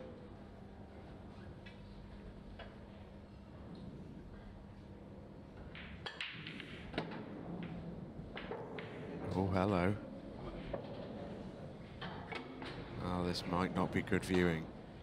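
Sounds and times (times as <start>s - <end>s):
low venue hum: 0.0s - 15.0s
cue striking ball: 5.6s - 9.2s
pool balls clicking: 5.6s - 9.5s.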